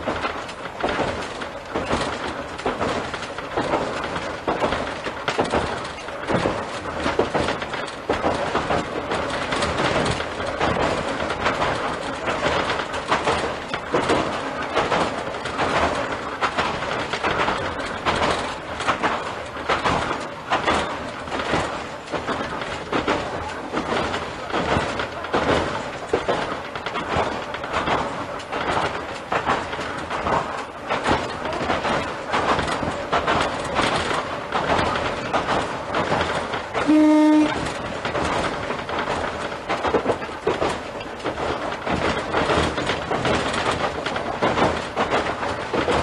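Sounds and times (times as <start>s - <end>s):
rattles and knocks from wheels: 0.0s - 46.0s
train running on track: 0.0s - 46.0s.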